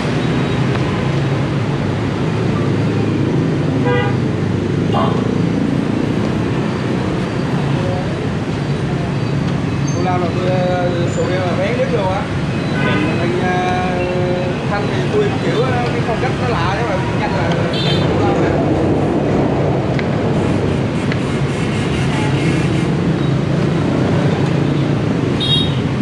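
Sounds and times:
street traffic rumble: 0:00.0 - 0:26.0
people talking: 0:09.9 - 0:18.7.

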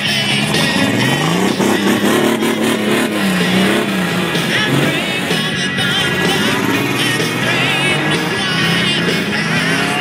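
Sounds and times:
music: 0:00.0 - 0:10.0
truck engine revving: 0:00.0 - 0:10.0.

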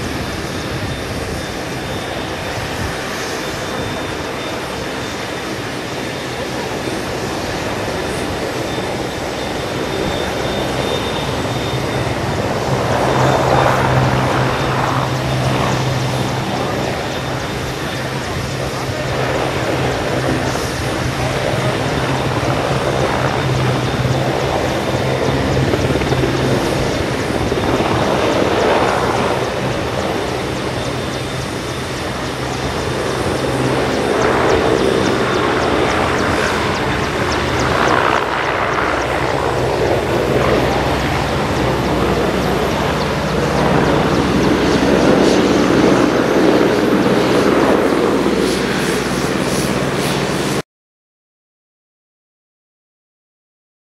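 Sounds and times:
helicopter rotor noise: 0:00.0 - 0:50.6
turbine engine hum: 0:00.0 - 0:50.6.

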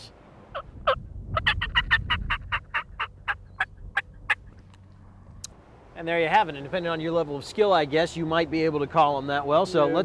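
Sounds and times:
turkey call yelps: 0:00.6 - 0:04.4.

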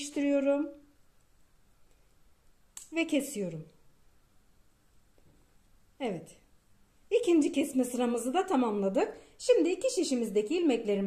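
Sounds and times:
woman speaking: 0:00.0 - 0:00.9, 0:02.8 - 0:03.8, 0:06.0 - 0:06.5, 0:07.1 - 0:11.0.

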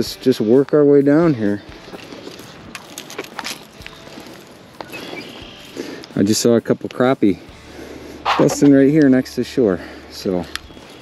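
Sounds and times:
footsteps through grass: 0:01.4 - 0:06.3.

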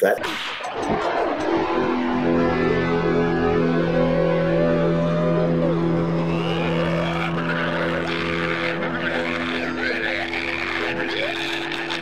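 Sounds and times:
low musical drone: 0:00.7 - 0:12.0.

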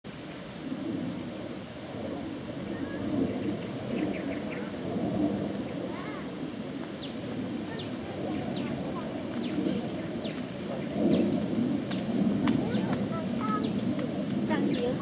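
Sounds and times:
birds chirping: 0:00.1 - 0:15.0
low background murmur: 0:02.6 - 0:15.0.

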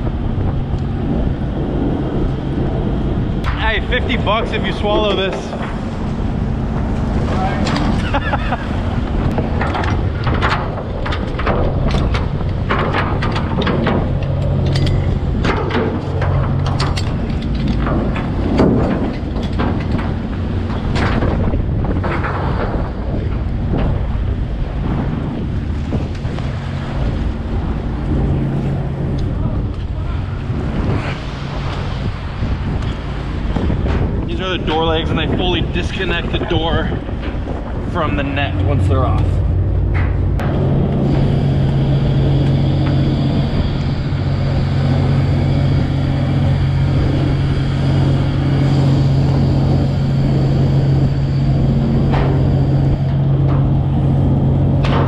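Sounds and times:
boat engine and machinery drone: 0:00.0 - 0:55.0
wake churning: 0:00.0 - 0:55.0
wind buffeting microphone: 0:00.0 - 0:55.0.

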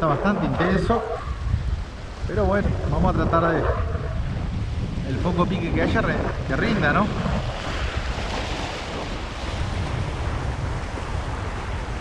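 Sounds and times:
waves washing over rocks: 0:00.0 - 0:12.0
wind buffeting microphone: 0:00.0 - 0:12.0.

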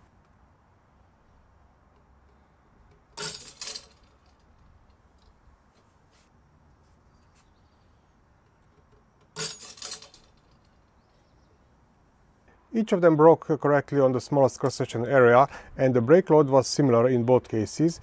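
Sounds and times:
steel shackles clinking: 0:02.8 - 0:05.4, 0:08.7 - 0:11.3.

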